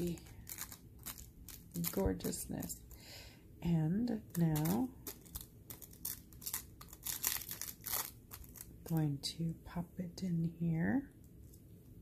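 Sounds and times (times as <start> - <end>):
cellophane crackling: 0.0 - 3.0, 4.0 - 9.0.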